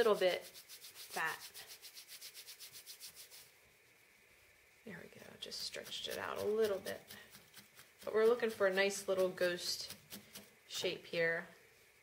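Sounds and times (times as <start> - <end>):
hands rubbing wool: 0.0 - 10.9.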